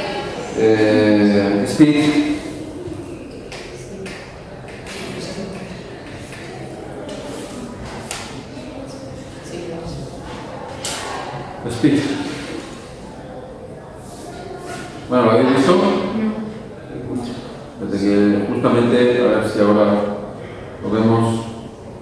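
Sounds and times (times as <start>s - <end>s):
murmured voice: 0.0s - 17.8s.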